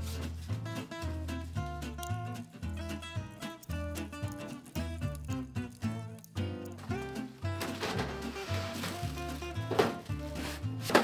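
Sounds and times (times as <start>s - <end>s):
acoustic guitar music: 0.0s - 11.0s
items knocking in metal cabinet: 7.5s - 11.0s.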